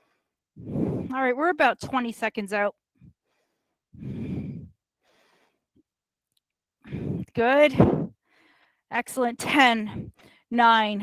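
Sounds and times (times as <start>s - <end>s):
faint breath: 0.0s - 1.1s, 3.0s - 5.7s, 6.8s - 8.9s.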